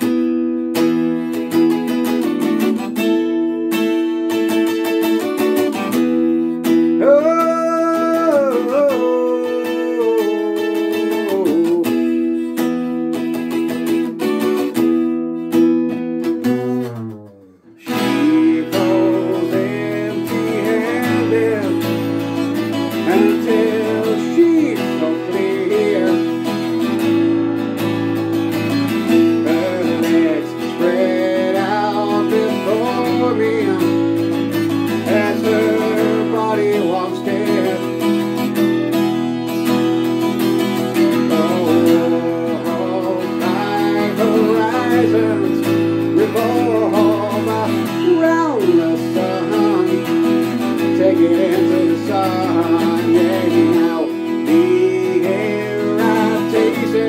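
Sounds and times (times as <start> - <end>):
acoustic guitar chords: 0.0 - 57.0.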